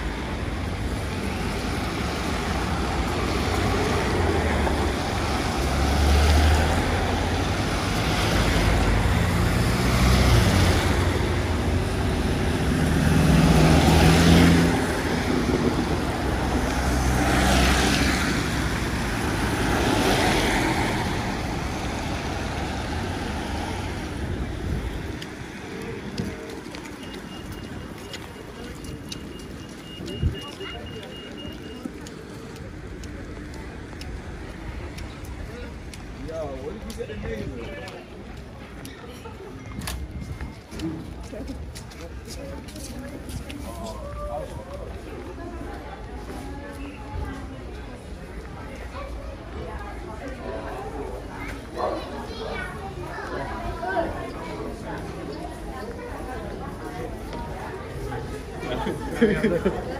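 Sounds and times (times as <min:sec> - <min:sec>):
traffic passing on wet road: 0:00.0 - 0:59.9.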